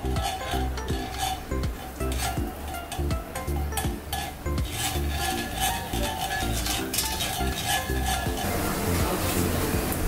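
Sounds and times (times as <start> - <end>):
whisk scraping a frying pan: 0.0 - 8.6
background music with steady beat: 0.0 - 10.0
fat sizzling: 0.0 - 10.0.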